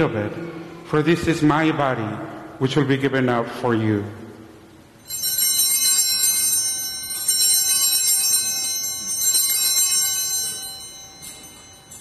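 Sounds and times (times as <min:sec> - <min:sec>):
small handbells ringing: 0:05.0 - 0:12.0.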